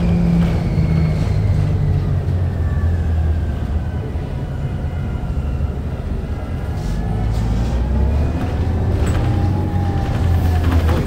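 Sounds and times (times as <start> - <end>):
bus engine drone: 0.0 - 11.0.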